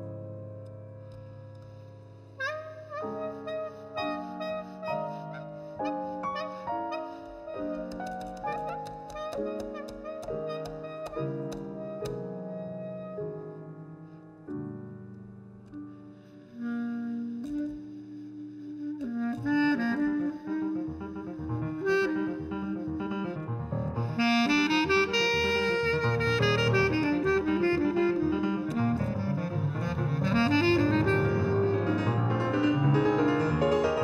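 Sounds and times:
piano playing jazz: 0:00.0 - 0:34.0
clarinet melody: 0:01.0 - 0:34.0.

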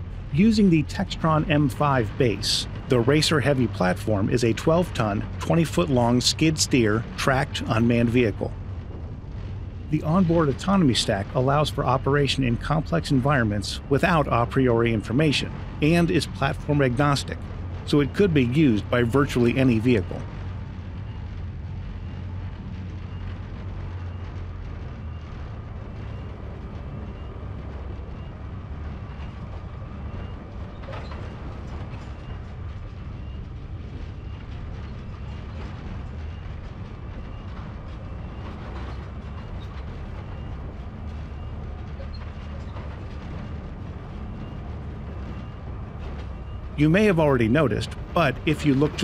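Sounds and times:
tracked vehicle low rumble: 0:00.0 - 0:49.0.

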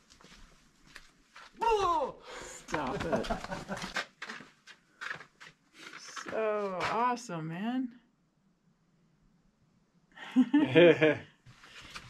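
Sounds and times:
wordless human voice: 0:01.6 - 0:03.6, 0:05.9 - 0:07.9.

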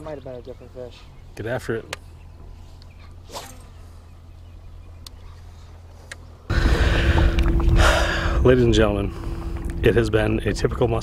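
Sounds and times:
steady droning tone: 0:03.6 - 0:11.0
wind buffeting microphone: 0:06.5 - 0:11.0.

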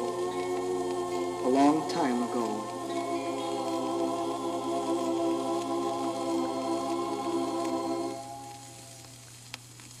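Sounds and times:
steady low hum: 0:00.0 - 0:09.5
held chord on vinyl record: 0:00.0 - 0:10.0
vinyl crackling hiss: 0:00.0 - 0:10.0.

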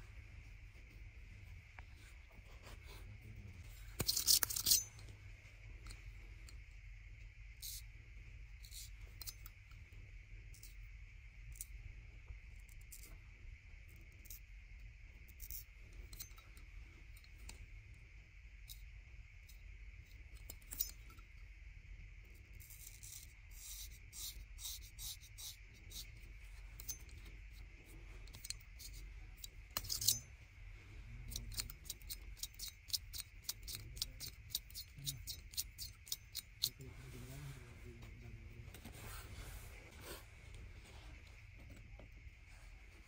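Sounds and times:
loud razor scrape: 0:04.0 - 0:05.0, 0:29.8 - 0:30.3.

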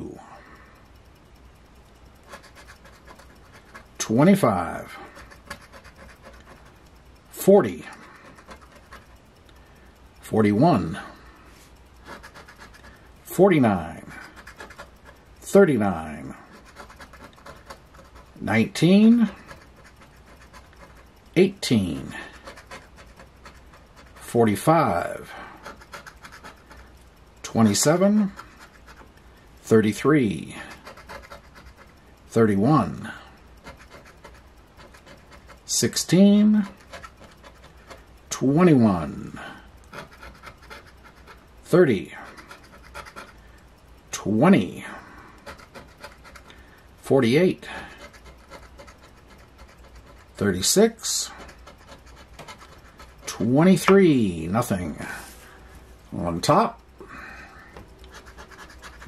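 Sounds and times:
coin scraping scratch card: 0:02.2 - 0:06.7, 0:07.6 - 0:09.1, 0:12.0 - 0:13.0, 0:14.0 - 0:15.2, 0:16.2 - 0:26.9, 0:27.5 - 0:29.1, 0:29.9 - 0:32.0, 0:32.7 - 0:43.4, 0:45.4 - 0:46.6, 0:47.7 - 0:54.0, 0:58.0 - 0:59.0.

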